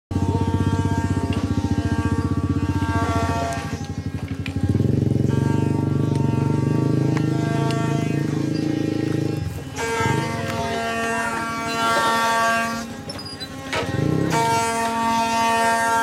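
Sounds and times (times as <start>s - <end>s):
wooden axle grinding drone: 0.1s - 16.0s.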